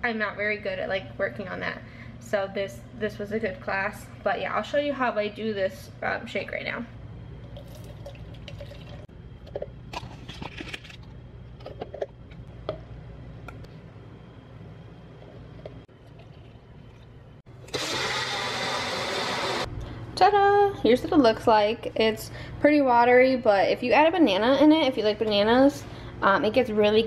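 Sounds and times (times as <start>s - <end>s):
blender running: 17.6s - 19.7s.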